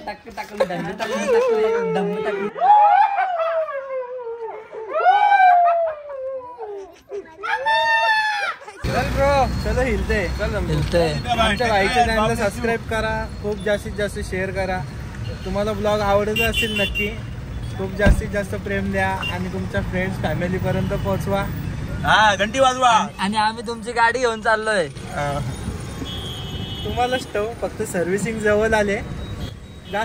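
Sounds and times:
men talking: 0.0 - 2.6, 8.8 - 25.6, 26.8 - 29.2
street noise: 0.0 - 30.0.

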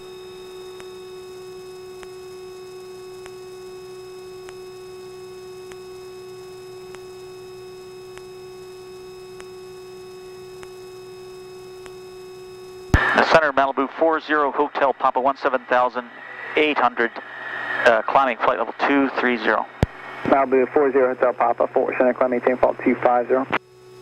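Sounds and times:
steady electrical hum: 0.0 - 24.0
faint ticks: 0.7 - 13.0.

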